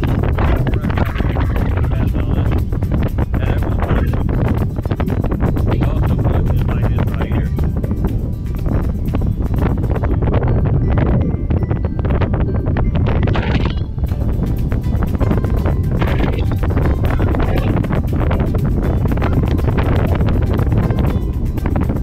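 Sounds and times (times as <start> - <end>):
music playing: 0.0 - 22.0
wind buffeting microphone: 0.0 - 22.0.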